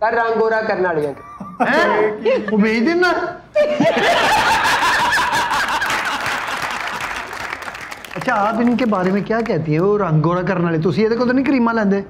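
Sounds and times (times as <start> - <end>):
audience laughing: 3.6 - 7.3
audience clapping: 4.9 - 10.0.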